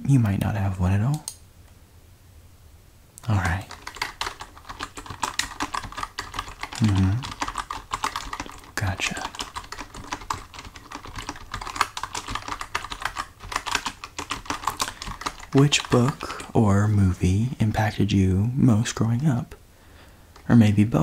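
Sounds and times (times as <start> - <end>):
typing on a computer keyboard: 3.4 - 16.6.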